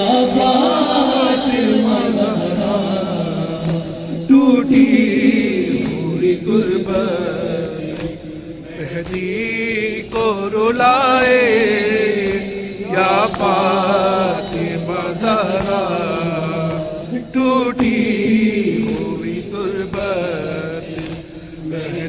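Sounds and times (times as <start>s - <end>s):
man chanting into a microphone: 0.0s - 22.0s.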